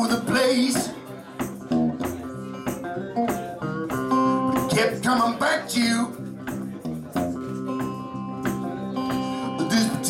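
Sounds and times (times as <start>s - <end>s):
electric guitar playing blues: 0.0s - 10.0s
person singing: 8.4s - 10.0s.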